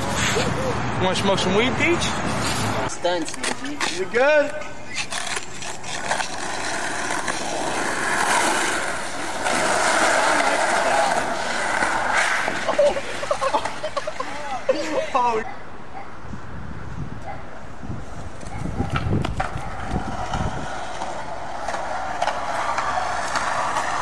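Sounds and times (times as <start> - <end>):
skateboard wheels rolling on asphalt: 1.4 - 15.1, 16.3 - 24.0
people laughing: 12.5 - 15.4.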